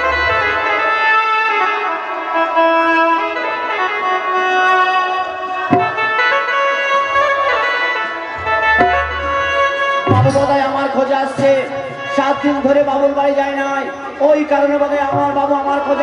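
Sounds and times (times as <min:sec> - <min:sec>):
band playing held melody: 0:00.0 - 0:16.0
sharp drum hit: 0:05.7 - 0:06.1, 0:08.8 - 0:09.4, 0:10.1 - 0:10.6.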